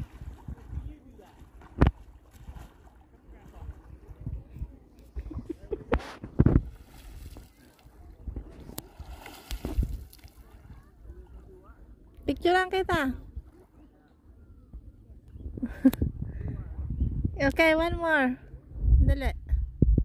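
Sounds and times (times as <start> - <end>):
water splashing and sloshing: 0.0 - 14.2.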